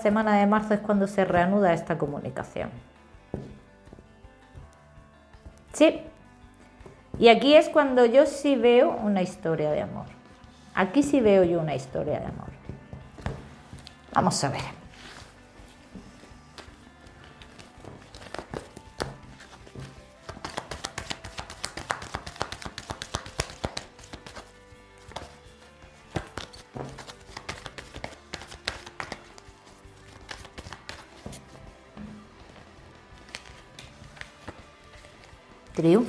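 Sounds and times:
quiet background music: 0.0s - 36.0s
cards laid on table: 3.3s - 3.6s
cards being shuffled: 14.8s - 35.8s.

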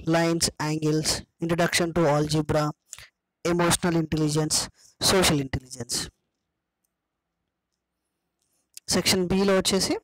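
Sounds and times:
person speaking: 0.0s - 6.5s, 8.4s - 10.0s.

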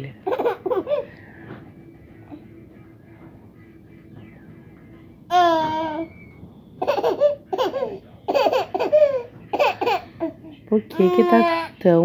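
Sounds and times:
baby giggling: 0.2s - 1.1s, 6.8s - 10.4s.

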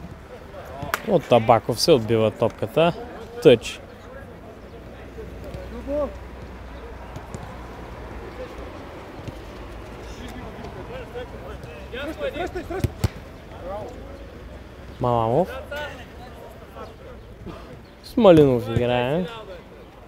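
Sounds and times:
players calling out: 0.0s - 20.0s
ball kick thud: 12.8s - 13.3s.

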